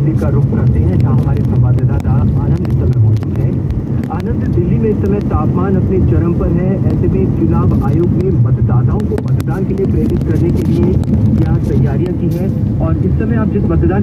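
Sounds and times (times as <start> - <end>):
car engine and road noise: 0.0 - 14.0.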